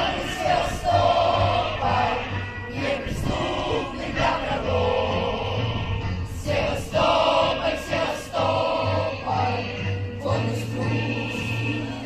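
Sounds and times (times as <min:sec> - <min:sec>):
choir singing with music: 0:00.0 - 0:12.0.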